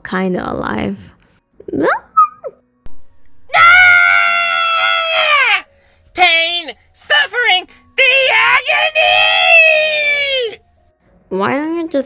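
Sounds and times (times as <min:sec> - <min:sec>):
person screaming: 0:03.5 - 0:05.7, 0:08.0 - 0:10.6.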